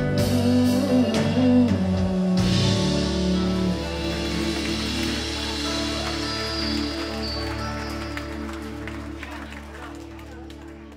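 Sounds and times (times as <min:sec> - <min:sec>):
audience clapping: 0:03.7 - 0:10.9.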